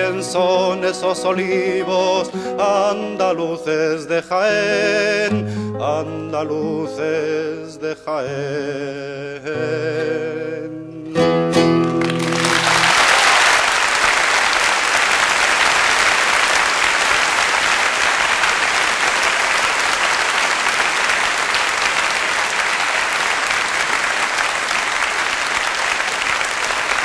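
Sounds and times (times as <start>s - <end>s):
crowd applauding: 11.7s - 27.0s.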